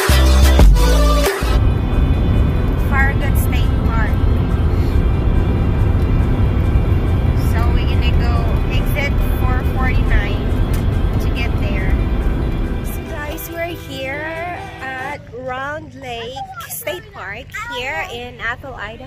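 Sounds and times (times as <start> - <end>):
person singing: 0.0 - 1.6, 12.9 - 15.4
car road and engine rumble: 0.0 - 19.0
music: 0.0 - 19.0.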